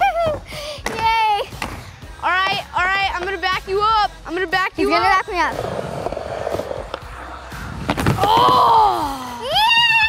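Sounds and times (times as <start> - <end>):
skateboard wheels rolling on wood: 5.5 - 8.9.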